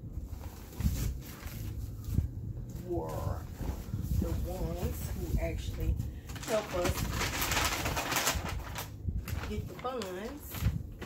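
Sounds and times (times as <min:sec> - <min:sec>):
paper bag and tissue rustling: 0:00.0 - 0:11.0.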